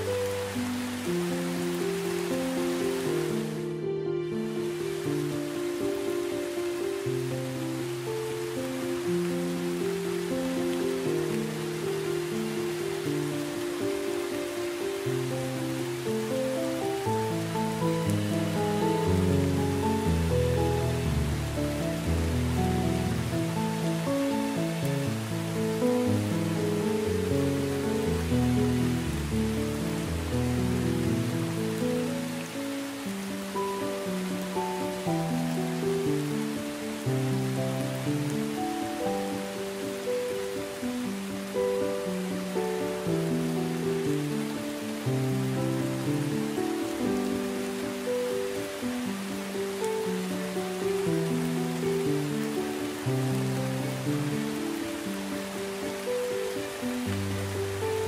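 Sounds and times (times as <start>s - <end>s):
calm instrumental music: 0.0s - 58.0s
steady rain falling: 0.0s - 58.0s.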